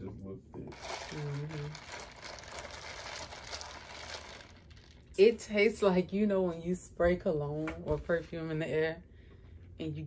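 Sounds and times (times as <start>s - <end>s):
straw stirring ice in cup: 0.7s - 5.2s.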